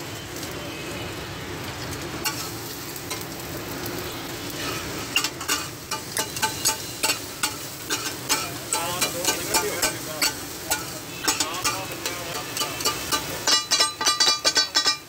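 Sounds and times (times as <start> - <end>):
food sizzling on a griddle: 0.0 - 15.0
metal spatula clacking on griddle: 2.2 - 3.4, 4.6 - 15.0.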